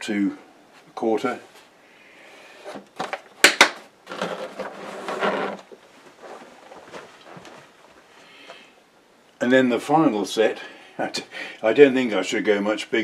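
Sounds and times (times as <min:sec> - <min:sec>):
case scraping across workbench: 0:04.1 - 0:07.7.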